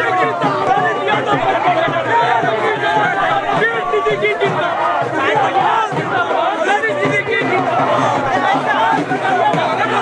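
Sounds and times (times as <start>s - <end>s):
crowd of men talking and calling: 0.0s - 10.0s.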